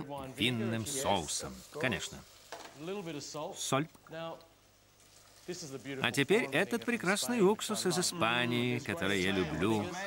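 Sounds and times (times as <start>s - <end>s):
man speaking: 0.0s - 4.4s, 5.5s - 10.0s.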